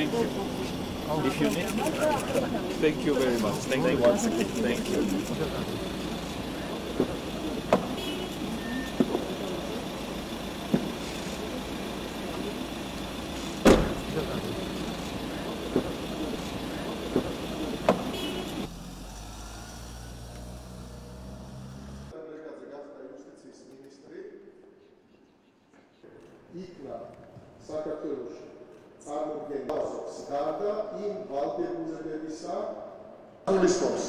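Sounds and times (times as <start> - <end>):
van engine running: 0.0 - 22.1
outdoor noise: 0.0 - 22.2
van door shutting thump: 13.6 - 14.1.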